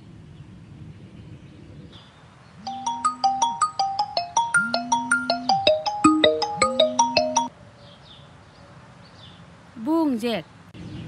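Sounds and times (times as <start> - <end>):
mobile phone ringtone melody: 2.7 - 7.5.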